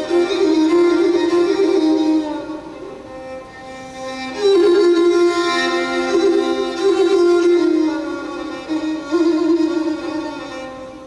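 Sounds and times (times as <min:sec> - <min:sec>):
bowed string melody: 0:00.0 - 0:11.0.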